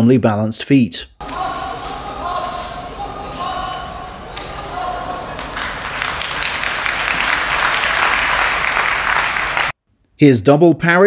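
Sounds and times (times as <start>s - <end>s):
referee's drawn-out calls: 1.2s - 9.7s
steady hall hum: 1.2s - 9.7s.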